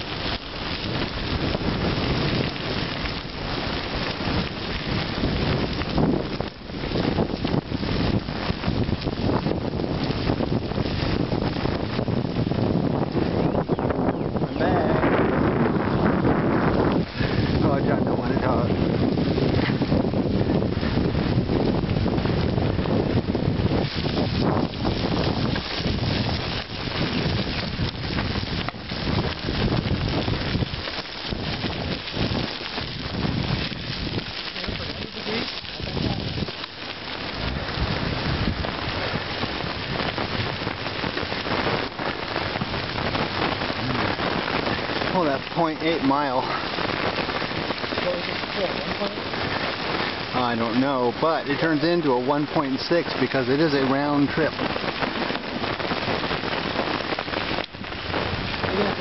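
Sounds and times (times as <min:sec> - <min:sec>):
bicycle tyres on gravel: 0:00.0 - 0:59.0
wind on microphone: 0:00.0 - 0:59.0.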